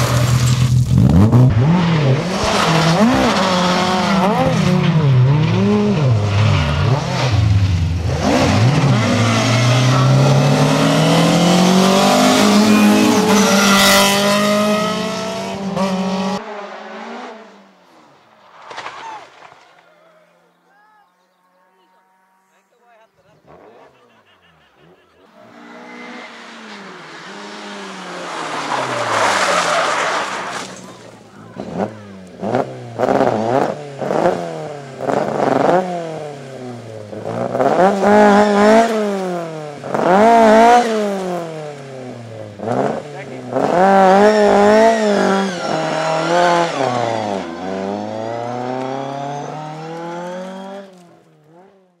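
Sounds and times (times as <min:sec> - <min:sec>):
rally car engine revving: 0:00.0 - 0:17.6, 0:23.3 - 0:52.0
tyre noise rushing: 0:18.0 - 0:20.2, 0:25.6 - 0:32.2.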